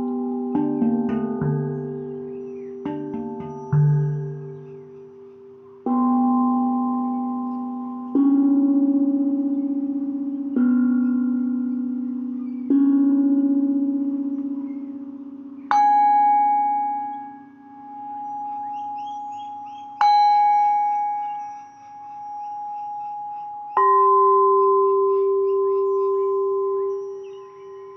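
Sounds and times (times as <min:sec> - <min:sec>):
higher singing bowl wavering tone: 0:00.0 - 0:27.9
low singing bowls ringing: 0:00.0 - 0:27.9.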